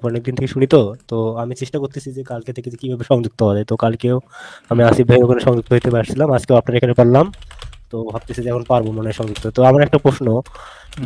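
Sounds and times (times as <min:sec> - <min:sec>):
man speaking quickly: 0:00.0 - 0:11.0.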